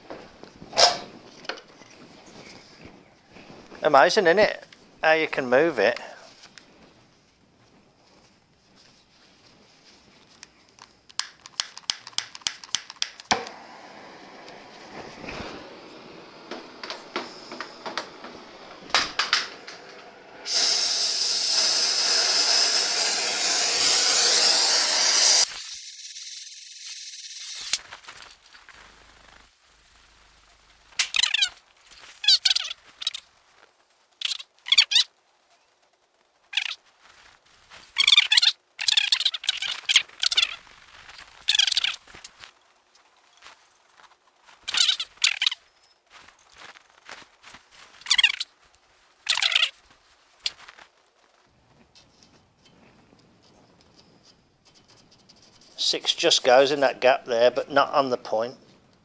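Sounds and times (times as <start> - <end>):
quick clicks: 10.7 - 13.6
gas welding torch hissing: 11.6 - 27.9.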